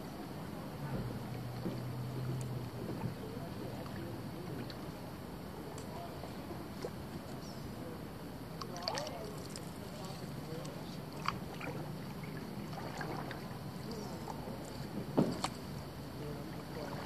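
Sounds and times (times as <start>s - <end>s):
low steady hum: 0.0s - 17.0s
water splashing and gurgling: 8.5s - 17.0s.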